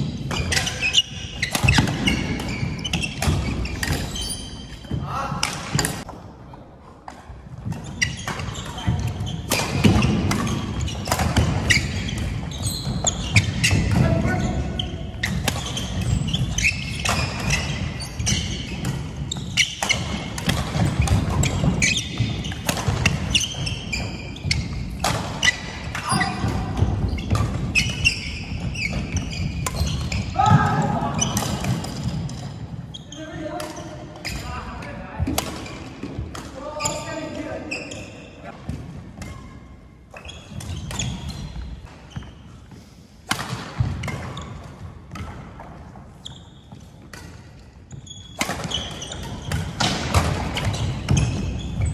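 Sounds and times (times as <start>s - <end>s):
sneakers squeaking on wooden floor: 0.0s - 6.1s, 7.1s - 42.8s, 43.6s - 51.9s
rackets striking shuttlecock: 0.3s - 6.2s, 7.1s - 14.0s, 15.2s - 32.5s, 43.2s - 45.9s.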